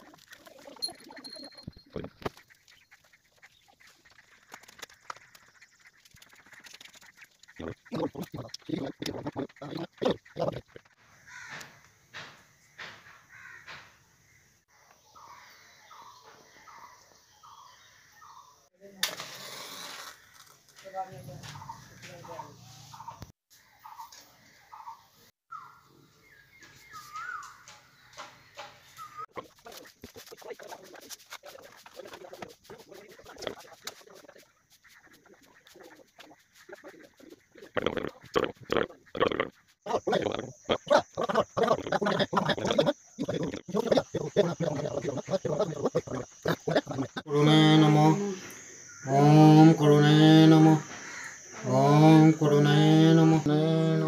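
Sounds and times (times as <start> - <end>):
faint harsh bird calls: 0.7 - 18.6, 19.5 - 47.3
person mumbling: 7.6 - 10.8, 37.8 - 48.5, 49.1 - 50.9, 51.6 - 54.0.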